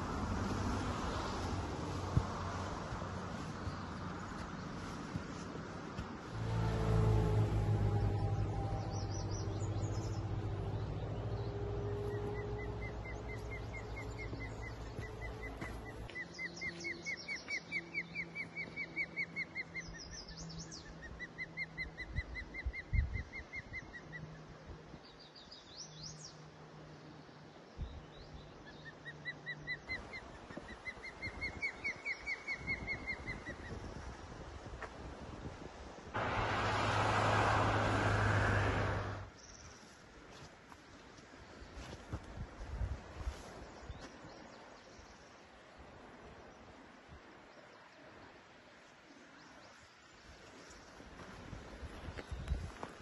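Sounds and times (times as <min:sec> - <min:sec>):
passing vehicle hum: 0:00.0 - 0:04.9, 0:06.2 - 0:16.1, 0:36.2 - 0:39.4.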